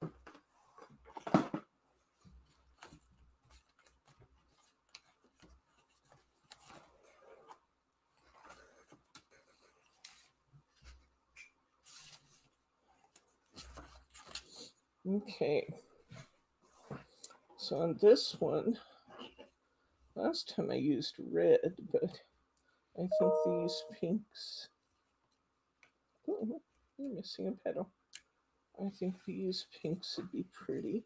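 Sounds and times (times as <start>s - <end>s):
paper and card rustling: 2.3s - 7.6s, 8.2s - 14.8s.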